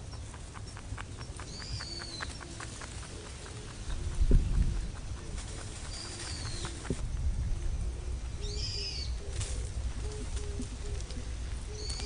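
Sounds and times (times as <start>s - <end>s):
bird higher chirping calls: 0.0s - 7.0s
steady low rumble: 0.0s - 12.0s
bird low repeated call: 0.6s - 7.0s, 7.9s - 12.0s.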